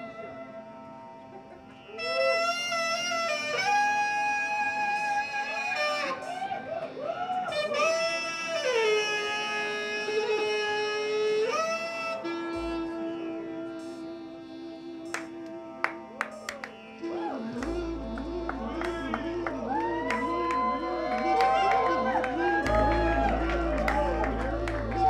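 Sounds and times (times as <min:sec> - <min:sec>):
alto saxophone melody: 0:01.8 - 0:06.8, 0:07.5 - 0:15.9, 0:17.0 - 0:25.0
synthesizer drone: 0:16.8 - 0:25.0.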